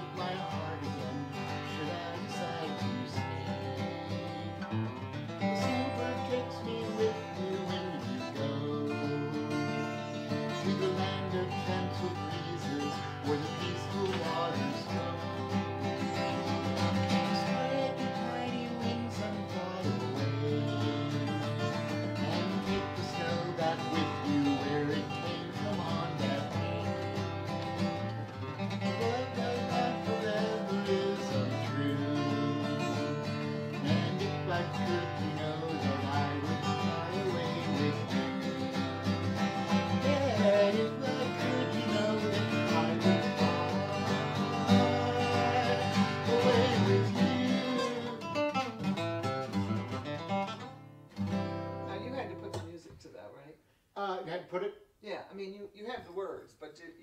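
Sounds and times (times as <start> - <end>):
acoustic guitar playing: 0.0 - 53.2.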